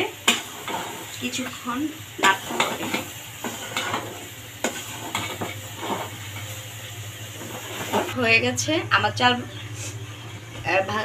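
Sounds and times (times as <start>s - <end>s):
faint sizzle: 0.0s - 11.0s
metal spoon scraping a pot: 0.2s - 1.2s, 2.2s - 6.5s.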